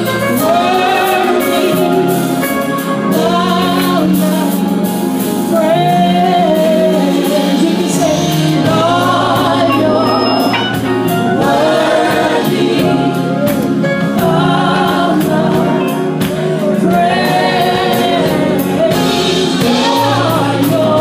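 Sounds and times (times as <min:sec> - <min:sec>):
gospel singing with band: 0:00.0 - 0:21.0.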